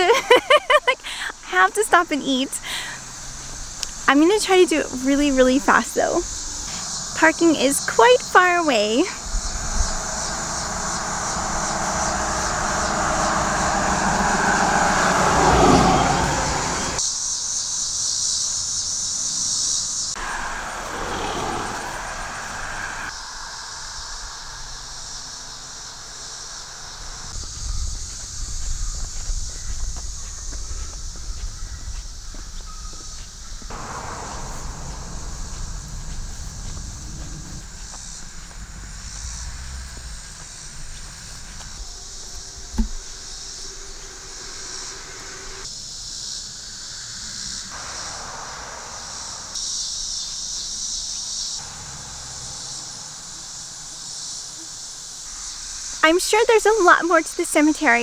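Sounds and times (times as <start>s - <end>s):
cars passing: 0.0s - 17.0s, 20.0s - 32.5s, 33.1s - 45.7s, 47.0s - 58.0s
insects chorus: 0.0s - 58.0s.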